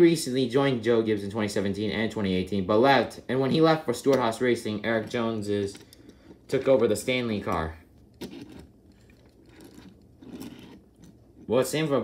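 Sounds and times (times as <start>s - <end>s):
toy car wheels rolling on table: 8.2s - 11.1s.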